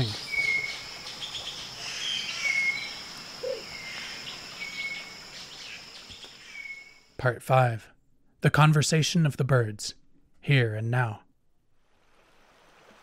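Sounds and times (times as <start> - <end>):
low rough bird call: 0.0 - 7.1.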